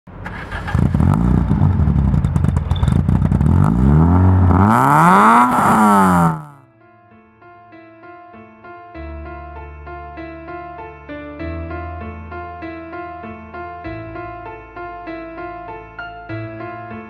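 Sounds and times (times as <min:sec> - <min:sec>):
exhaust crackling: 0:00.1 - 0:06.6
car engine revving hard: 0:00.3 - 0:06.6
soft piano music: 0:06.6 - 0:17.0.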